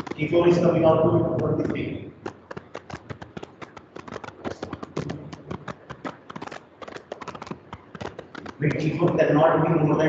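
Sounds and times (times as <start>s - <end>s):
rapid sharp clicking: 0.0s - 10.0s.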